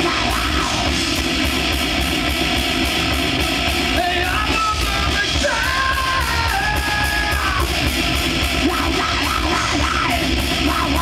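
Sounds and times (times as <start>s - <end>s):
bass guitar: 0.0s - 11.0s
distorted electric guitar: 0.0s - 11.0s
steady drumming: 0.0s - 11.0s.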